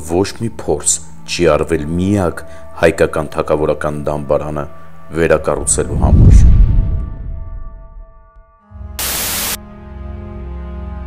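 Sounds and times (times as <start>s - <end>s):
low sustained music tones: 0.0s - 11.0s
white-noise static burst: 9.0s - 9.6s.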